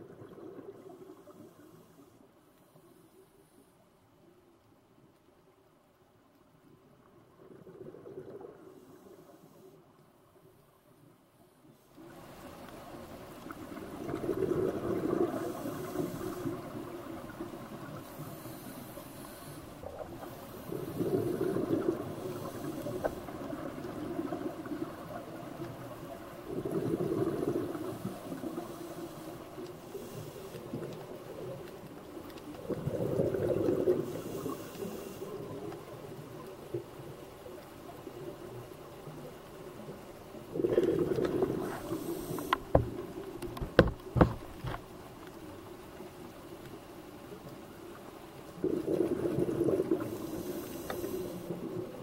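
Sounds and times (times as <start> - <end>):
underwater wash: 0.0 - 52.0
diver's breath bubbling underwater: 20.5 - 22.8, 26.5 - 28.8, 32.7 - 35.0, 40.5 - 42.8, 48.6 - 52.0.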